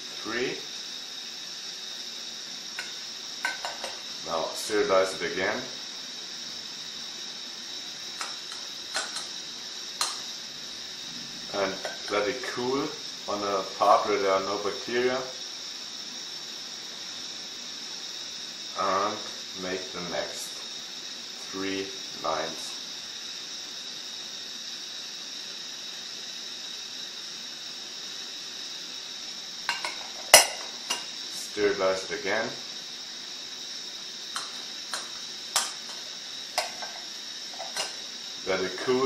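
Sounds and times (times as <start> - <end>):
high-pitched hiss: 0.0 - 39.0.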